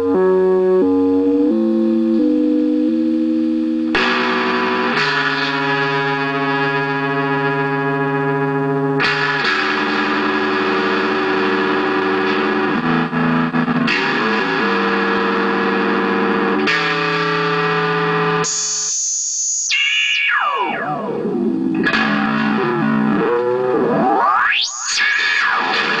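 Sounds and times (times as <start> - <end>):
electric guitar with effects: 0.0 - 26.0
high tone sliding down: 18.5 - 26.0.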